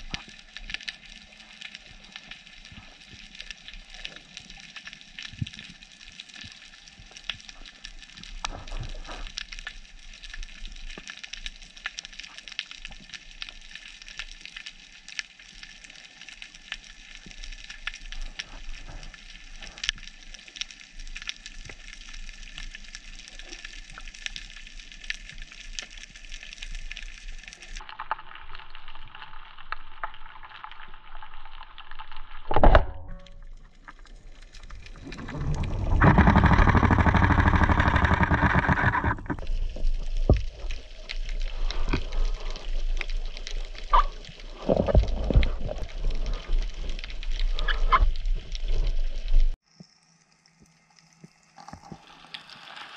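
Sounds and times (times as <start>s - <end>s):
underwater crackle of clicks: 0.0s - 52.9s.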